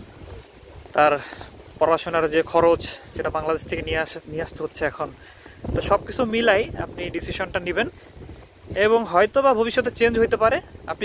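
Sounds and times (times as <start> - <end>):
wind rumbling on microphone: 0.0 - 11.0
person speaking: 1.0 - 7.9.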